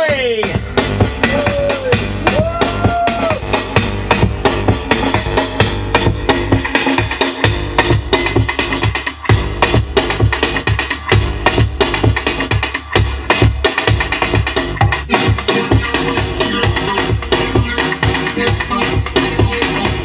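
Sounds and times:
deep bass: 0.0 - 20.0
fast breakbeat drums: 0.0 - 20.0.

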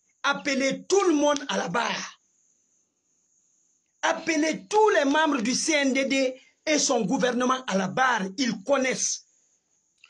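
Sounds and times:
faint high-pitched hiss: 0.0 - 10.0.

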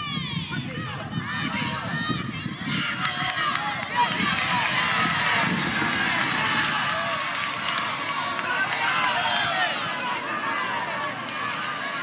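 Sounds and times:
many voices shouting: 0.0 - 12.0.

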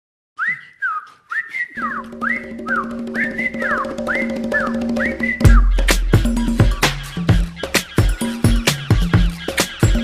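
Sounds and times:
whistled melody: 0.4 - 10.0
bass line: 2.0 - 7.6
drums: 2.0 - 10.0.

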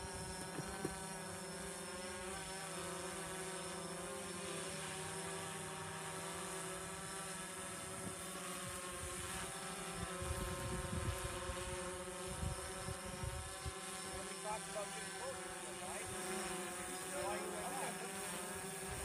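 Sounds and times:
wind buffeting microphone: 10.2 - 11.4.

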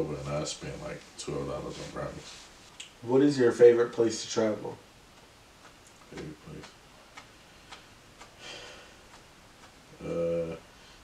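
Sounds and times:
faint regular ticking: 4.8 - 10.6
soft breathy sound: 7.5 - 9.2.

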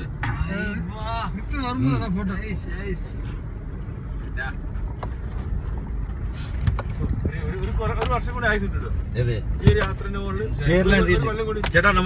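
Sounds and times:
engine and tyres rumbling on gravel: 1.1 - 12.0
car knocks and rattles: 6.6 - 8.7, 9.4 - 10.3.

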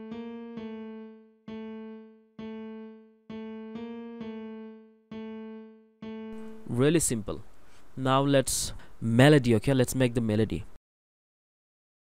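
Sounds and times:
simple piano melody: 0.0 - 7.2.

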